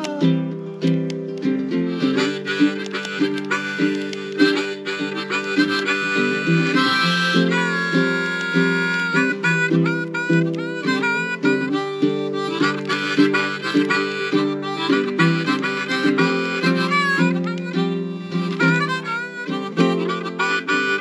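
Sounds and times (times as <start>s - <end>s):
blues harmonica melody: 0.0s - 21.0s
strummed ukulele chords: 0.0s - 21.0s.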